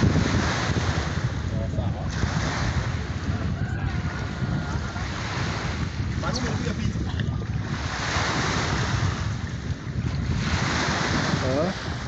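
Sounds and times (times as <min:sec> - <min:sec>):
small waves lapping on shore: 0:00.0 - 0:12.0
wind buffeting microphone: 0:00.0 - 0:12.0.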